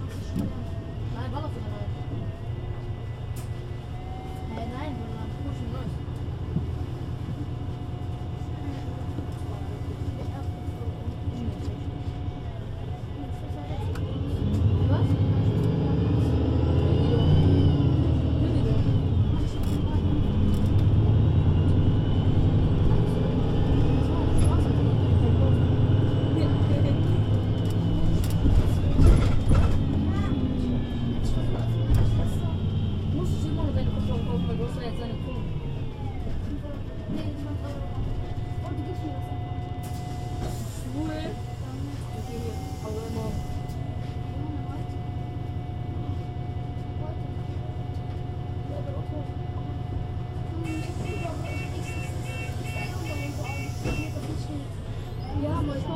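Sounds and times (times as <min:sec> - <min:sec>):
bus engine running: 0:00.0 - 0:55.9.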